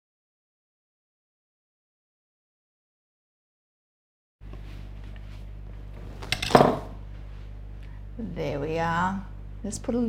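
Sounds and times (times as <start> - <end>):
room tone hum: 4.4 - 10.0.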